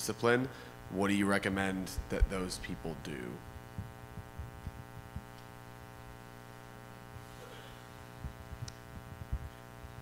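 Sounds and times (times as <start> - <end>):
person speaking: 0.0 - 3.6
electrical mains hum: 0.0 - 10.0
faint low thumps: 1.8 - 6.1, 8.1 - 10.0.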